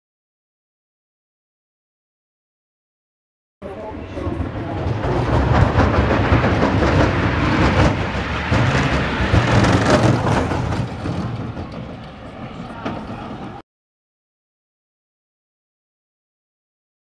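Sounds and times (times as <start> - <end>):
bobsleigh rumbling on concrete: 3.6 - 13.6.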